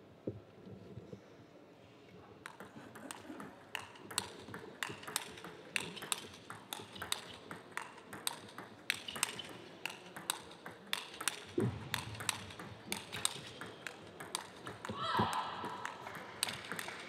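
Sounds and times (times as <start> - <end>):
table tennis ball clicking: 2.4 - 15.0, 15.8 - 17.0.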